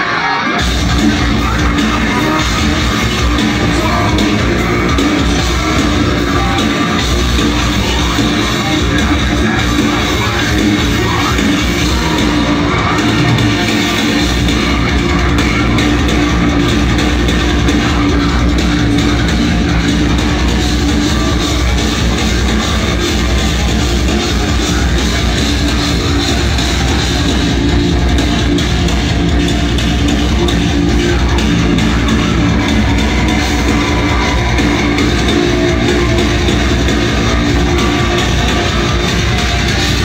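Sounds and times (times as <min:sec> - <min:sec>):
drum kit: 0:00.0 - 0:40.0
heavy guitars: 0:00.0 - 0:40.0
metal band playing loud: 0:00.0 - 0:40.0.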